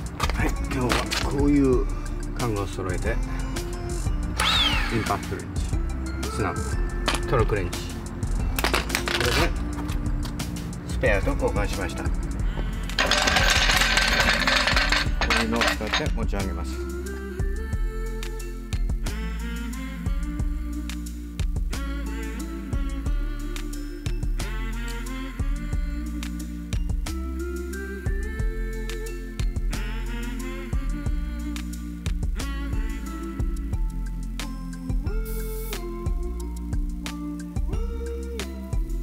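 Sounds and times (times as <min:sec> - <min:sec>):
background music: 0:00.0 - 0:39.0.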